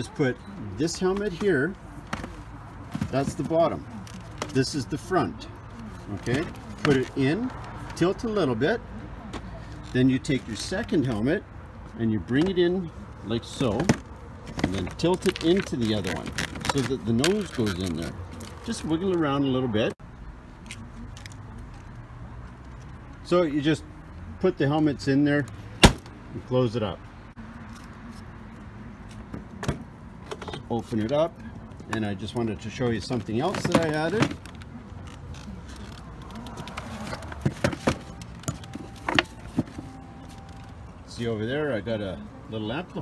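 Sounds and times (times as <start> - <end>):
handling clicks and knocks: 0.8 - 4.9, 5.7 - 8.1, 13.5 - 19.3, 29.1 - 40.8.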